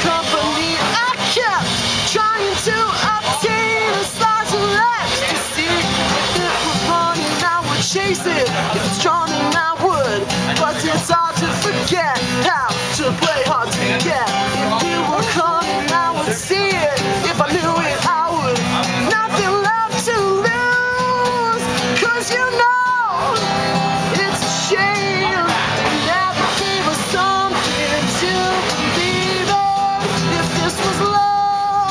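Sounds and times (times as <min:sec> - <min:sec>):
man singing: 0:00.0 - 0:31.9
strummed acoustic guitar: 0:00.0 - 0:31.9.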